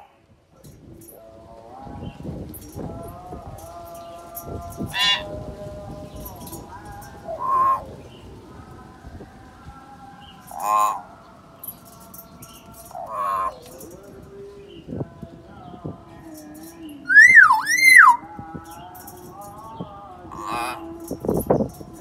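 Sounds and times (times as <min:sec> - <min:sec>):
myna bird harsh calls: 0:04.8 - 0:05.3, 0:07.2 - 0:07.9, 0:10.4 - 0:11.1, 0:12.5 - 0:13.9, 0:17.1 - 0:18.2, 0:20.3 - 0:20.9
soft whistled bird notes: 0:06.0 - 0:08.4, 0:15.6 - 0:19.8.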